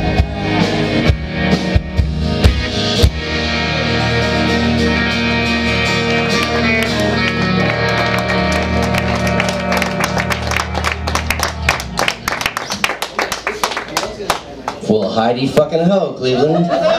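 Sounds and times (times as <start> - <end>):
rock band playing: 0.0 - 13.5.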